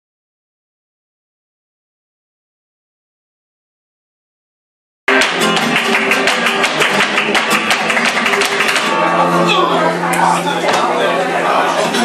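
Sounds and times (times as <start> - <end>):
rhythmic hand-clapping: 5.1 - 9.3
flamenco guitar playing: 5.1 - 12.0.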